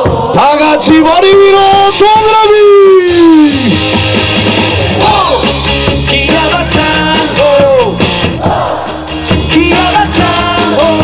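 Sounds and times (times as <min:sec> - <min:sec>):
rock cheer song over loudspeakers: 0:00.0 - 0:11.0.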